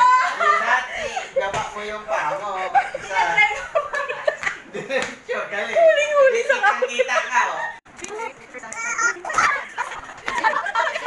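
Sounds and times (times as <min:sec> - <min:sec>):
people talking and laughing: 0:00.0 - 0:11.0
sharp slaps: 0:04.4 - 0:05.2.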